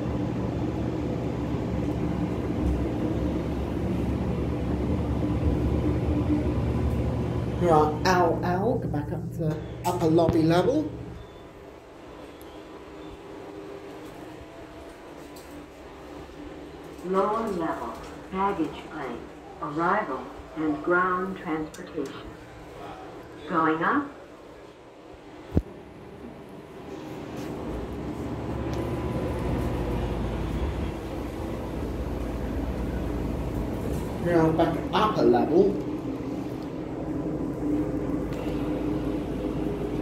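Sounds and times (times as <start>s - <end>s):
elevator ride hum: 0.0s - 40.0s.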